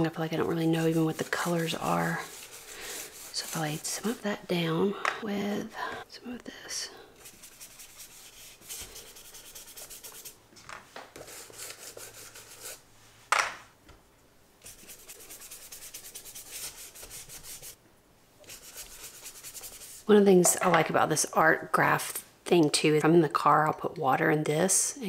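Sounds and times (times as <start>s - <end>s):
paintbrush scrubbing on paper: 0.1s - 4.4s, 7.2s - 10.4s, 11.2s - 12.8s, 14.6s - 17.8s, 18.4s - 20.2s.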